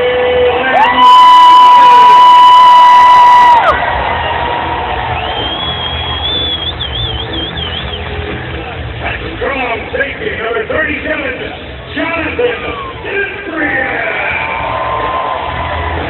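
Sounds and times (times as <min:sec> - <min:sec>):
stadium crowd cheering: 0:00.0 - 0:16.0
high shrill whistle: 0:05.2 - 0:08.0.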